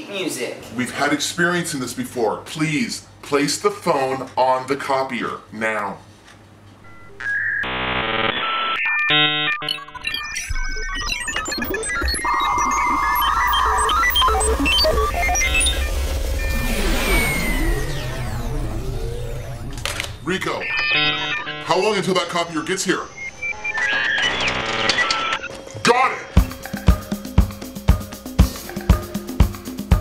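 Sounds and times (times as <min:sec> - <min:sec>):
electronic bleeps: 0:06.8 - 0:25.5
sweeping electronic tones: 0:06.8 - 0:27.3
short beeps: 0:08.7 - 0:25.5
low hum: 0:10.4 - 0:25.7
steady buzz: 0:11.8 - 0:25.6.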